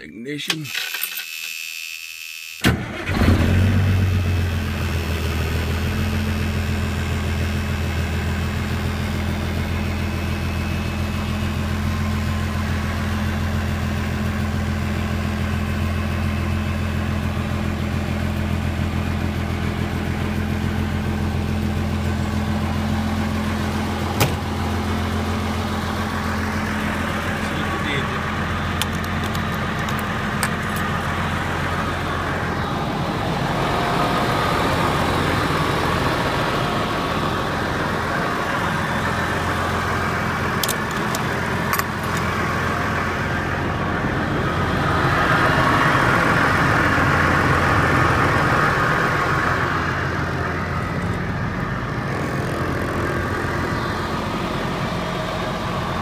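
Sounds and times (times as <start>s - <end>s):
diesel engine cranking and idling: 2.6s - 56.0s.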